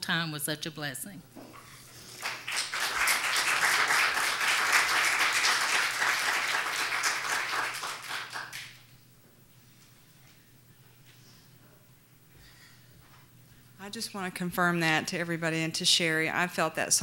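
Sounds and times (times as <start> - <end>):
crowd clapping: 2.1 - 8.8.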